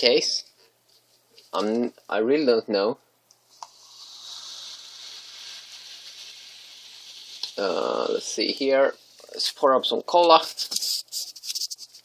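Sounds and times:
cola fizzing hiss: 3.4 - 9.4.

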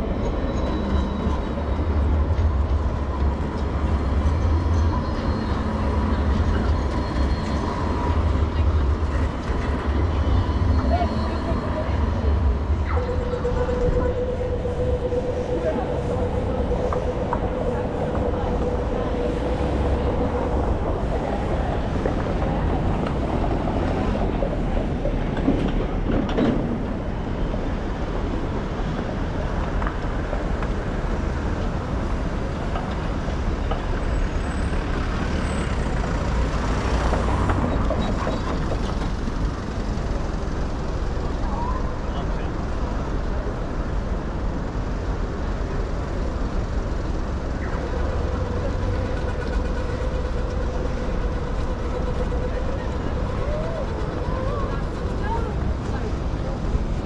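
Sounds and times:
pedestrians' voices: 0.0 - 57.0
vehicles passing: 0.0 - 57.0.

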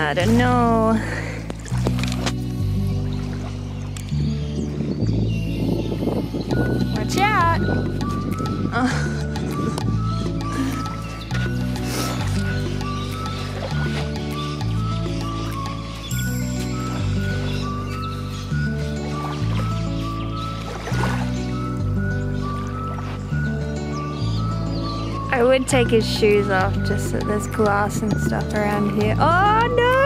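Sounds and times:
instrumental music with bass tones: 0.0 - 30.0.

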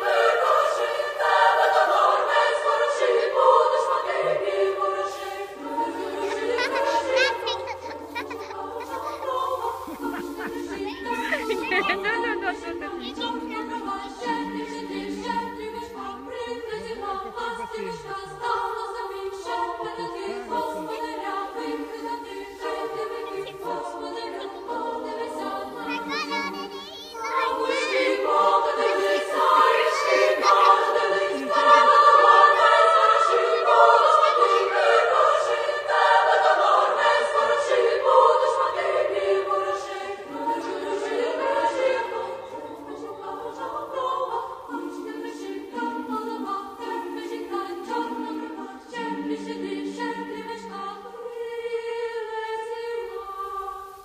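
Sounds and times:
choir singing held chords: 0.0 - 54.0.

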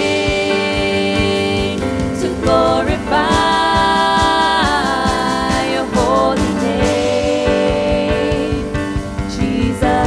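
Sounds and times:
keyboard accompaniment: 0.0 - 10.0.

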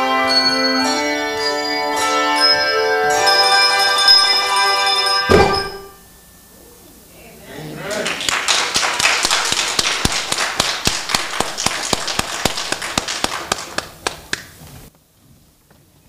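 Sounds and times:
audience applauding: 7.8 - 14.6.

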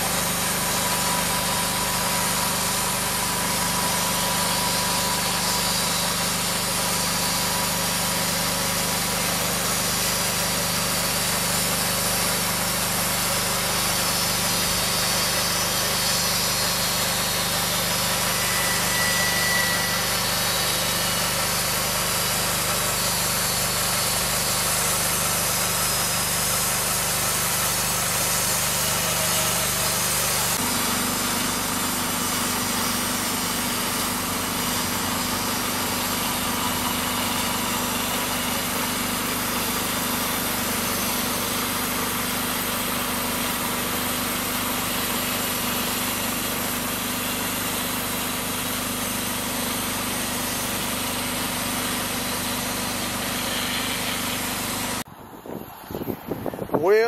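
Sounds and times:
band saw cutting log: 0.0 - 55.1
sawmill engine running: 0.0 - 57.0.

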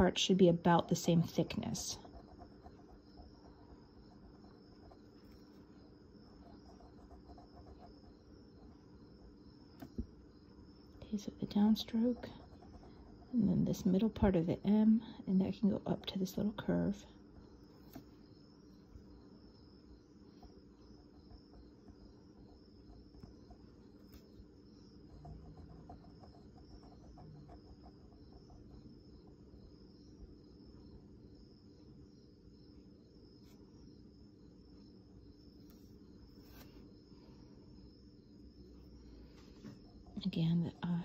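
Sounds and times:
faint steady hum: 0.0 - 41.0.

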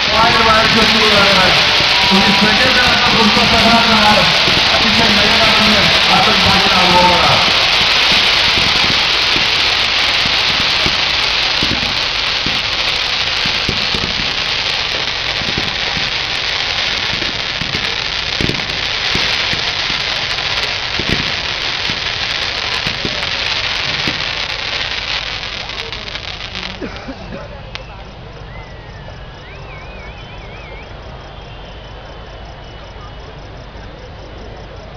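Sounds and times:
fireworks crackling hiss: 0.0 - 34.9.

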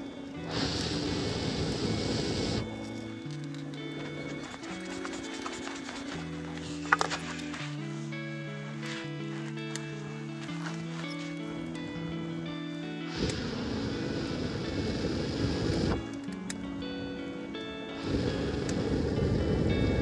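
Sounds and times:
air rushing through blowing pipe: 0.0 - 3.2, 13.1 - 16.2, 17.2 - 20.0
slow instrumental melody: 0.0 - 20.0.

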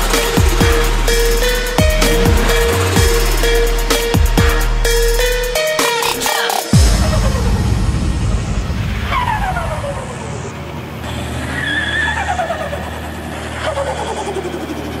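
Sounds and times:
car engines revving: 0.0 - 5.2, 7.0 - 15.0.

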